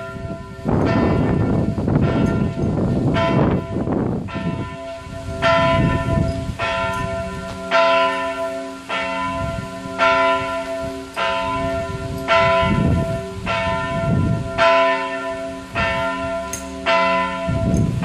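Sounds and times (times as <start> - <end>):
church bells ringing: 0.0 - 18.0.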